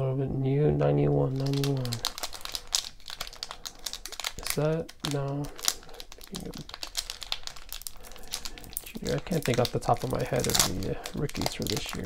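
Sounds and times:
foil pack crinkling: 1.3s - 12.0s.

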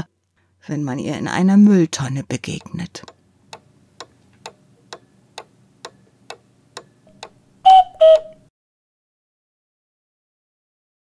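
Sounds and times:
clock ticking: 2.6s - 8.4s.

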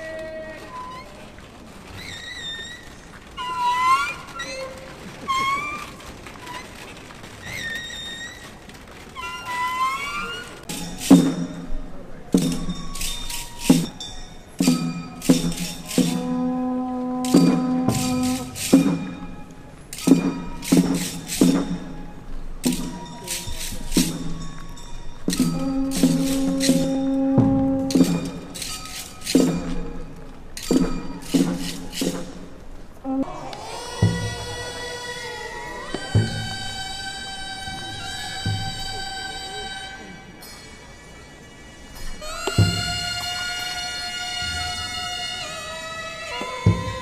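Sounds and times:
sharp struck beats: 12.4s - 16.6s, 17.2s - 32.5s.

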